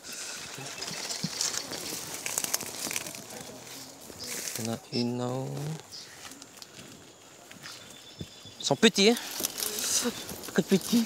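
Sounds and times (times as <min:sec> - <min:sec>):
footsteps through tall grass: 0:00.0 - 0:11.0
rustling of plants: 0:00.0 - 0:11.0.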